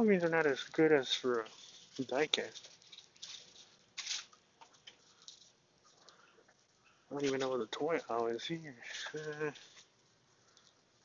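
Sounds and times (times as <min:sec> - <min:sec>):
faint short rustles: 0:00.1 - 0:11.0.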